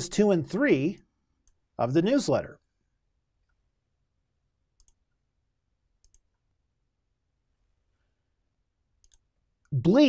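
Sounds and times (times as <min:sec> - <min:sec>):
faint mouse clicks: 0:04.8 - 0:05.2, 0:06.0 - 0:06.5, 0:09.0 - 0:09.7.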